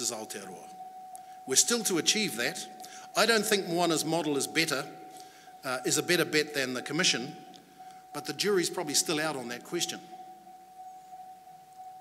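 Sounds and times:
faint steady tone: 0.0s - 12.0s.

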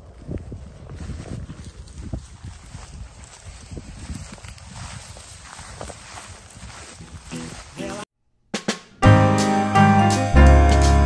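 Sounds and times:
grass stalks rustling: 0.0s - 8.0s
footsteps through dry grass: 0.0s - 8.1s.

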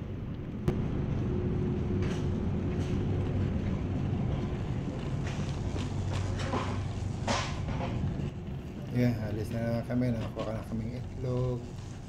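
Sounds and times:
faint hum: 0.0s - 12.0s
shopping cart rolling on concrete: 2.0s - 12.0s.

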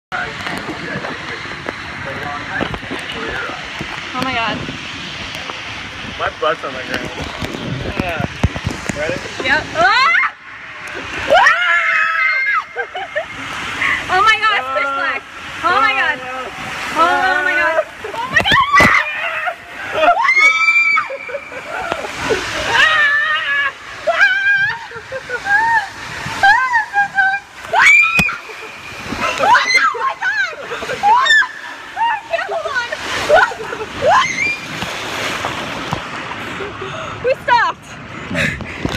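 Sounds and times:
water rushing and splashing: 0.1s - 38.9s
riders screaming: 18.4s - 21.4s, 27.7s - 28.6s, 29.2s - 32.5s, 34.0s - 34.8s.

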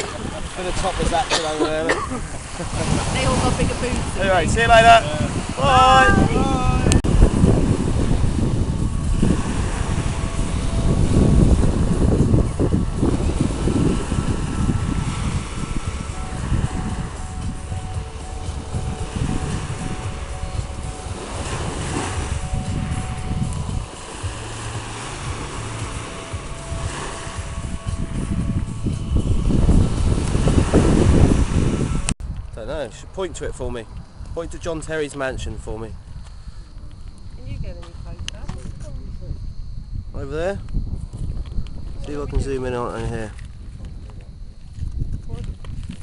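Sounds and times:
waves washing on shingle: 0.0s - 32.1s
wind on microphone: 0.0s - 46.0s.

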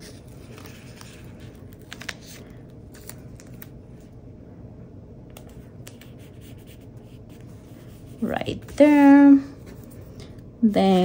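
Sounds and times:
paper rustles: 0.0s - 3.7s
low steady hum: 0.0s - 11.0s.

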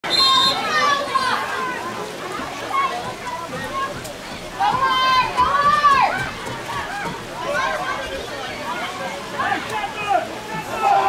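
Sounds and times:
children shouting and calling: 0.0s - 11.0s.

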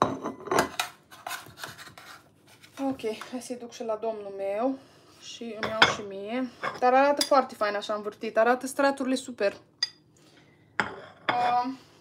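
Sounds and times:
metal spoon scraping a baking tray: 0.6s - 3.2s.

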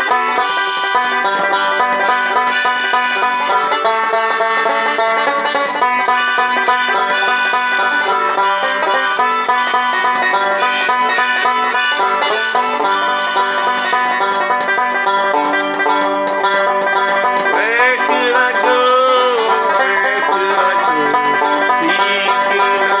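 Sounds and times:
banjo picking: 0.0s - 23.0s
harmonica held notes: 0.0s - 23.0s
person singing: 17.5s - 23.0s.

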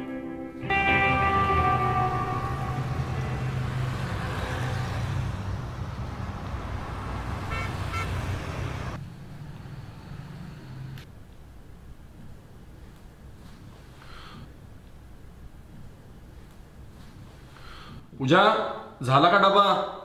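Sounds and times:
car horns: 0.6s - 9.0s
traffic rumble: 0.6s - 18.2s.

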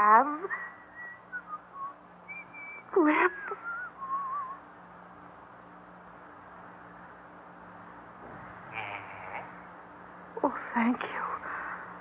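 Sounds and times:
low steady hum: 0.0s - 12.0s
wavering whistle: 0.9s - 2.9s.

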